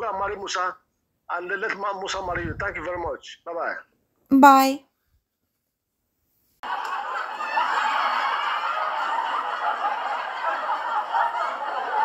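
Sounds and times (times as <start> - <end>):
canned crowd laughter: 6.6 - 12.0.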